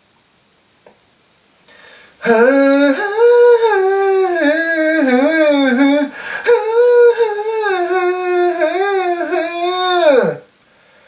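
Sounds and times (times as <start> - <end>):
man humming a slow melody: 2.2 - 10.5.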